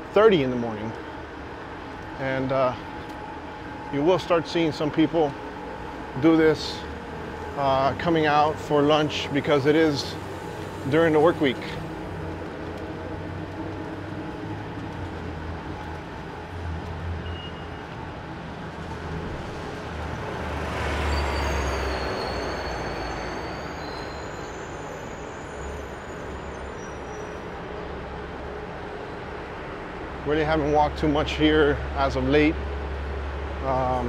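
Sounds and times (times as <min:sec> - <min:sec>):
city bus passing: 0:00.0 - 0:34.0
low hum of street traffic: 0:00.0 - 0:34.0
high-pitched squeals: 0:20.2 - 0:27.6.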